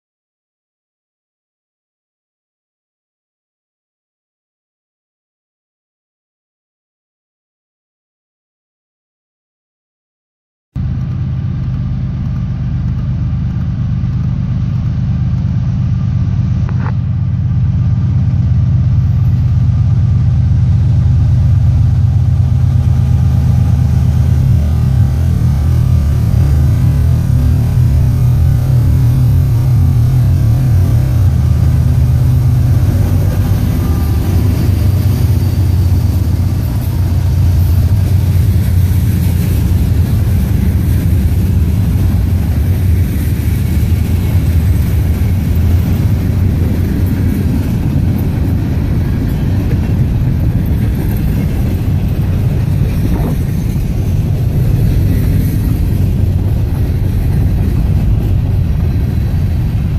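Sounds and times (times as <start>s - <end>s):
freight cars rolling on rails: 10.8s - 59.9s
locomotive diesel engines droning: 10.8s - 59.9s.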